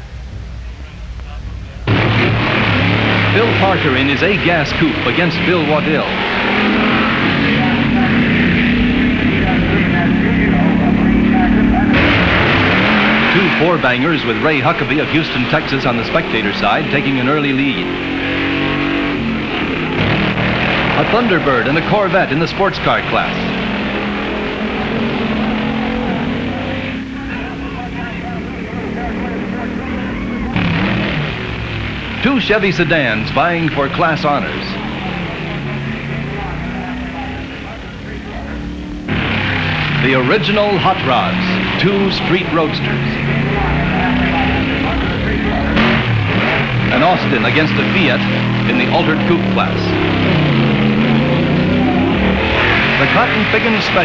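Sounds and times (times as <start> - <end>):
drag racing engines roaring: 0.0 - 54.0
low engine rumble: 0.0 - 54.0.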